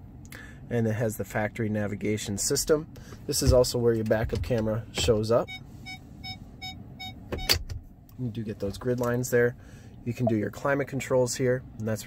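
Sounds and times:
reverse warning beeps: 5.4 - 7.5, 10.1 - 10.6.

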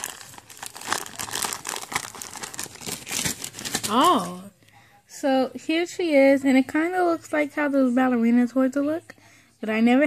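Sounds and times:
packaging crinkling and tearing: 0.0 - 4.4.

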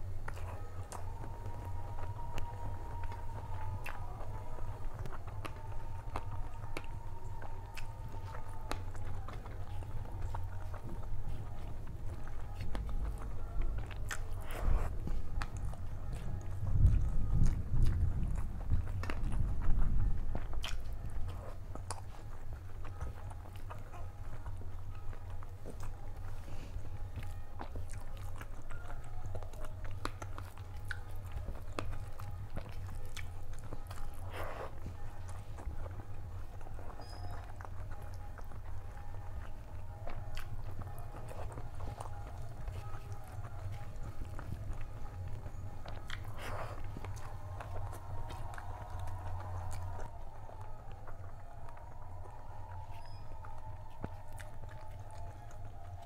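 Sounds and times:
close chewing and mouth sounds: 0.0 - 56.0.

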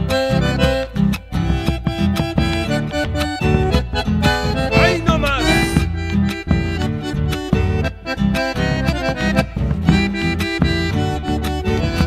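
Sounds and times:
accordion-type instrument: 0.0 - 12.0
guitar playing: 0.0 - 12.0
steady beat: 0.1 - 12.0.

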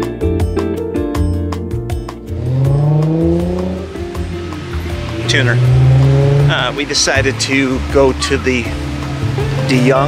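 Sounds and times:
background music: 0.0 - 10.0
car engine accelerating: 2.2 - 10.0.

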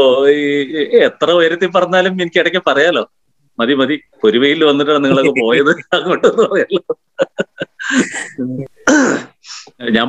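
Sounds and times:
man laughing heartily: 5.1 - 8.4.

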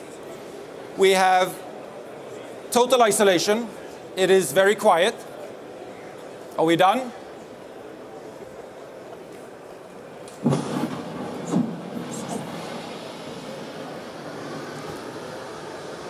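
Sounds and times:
underwater explosion over loudspeakers: 10.4 - 13.8.

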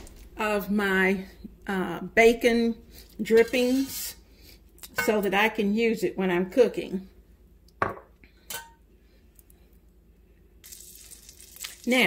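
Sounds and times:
butter and bacon sizzling: 10.6 - 12.0.

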